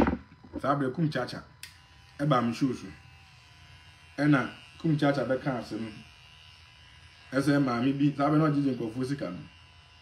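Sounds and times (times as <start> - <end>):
electric hair clipper buzzing: 0.0 - 10.0.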